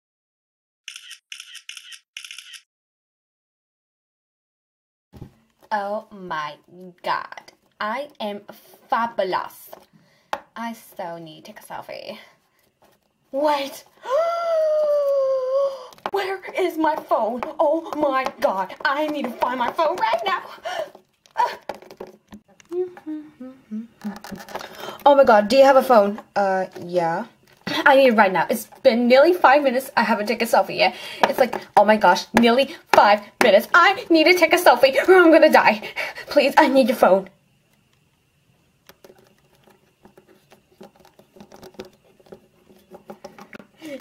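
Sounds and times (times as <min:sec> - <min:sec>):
person humming descending notes: 0:22.7 - 0:24.3.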